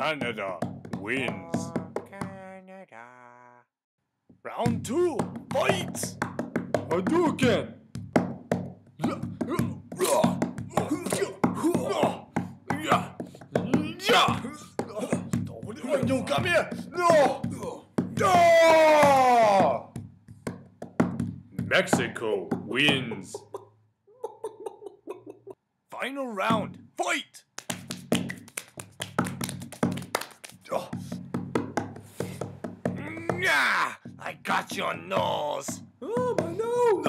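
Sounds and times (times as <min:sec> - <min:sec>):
pained cry: 0:09.0 - 0:16.0, 0:16.9 - 0:19.8, 0:36.0 - 0:37.0
shouts and grunts: 0:09.0 - 0:20.0, 0:30.6 - 0:31.2, 0:33.0 - 0:37.0.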